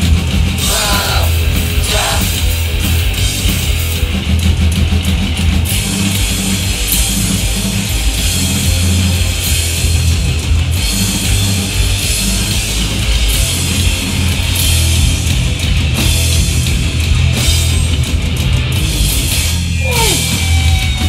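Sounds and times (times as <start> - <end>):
punk band playing live: 0.0 - 21.0.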